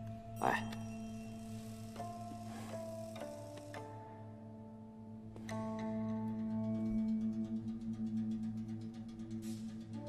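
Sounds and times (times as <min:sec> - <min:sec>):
low drone music: 0:00.0 - 0:10.0.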